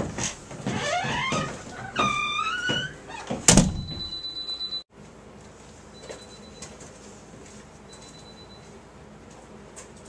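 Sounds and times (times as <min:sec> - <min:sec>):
loud thump: 0:03.5 - 0:04.1.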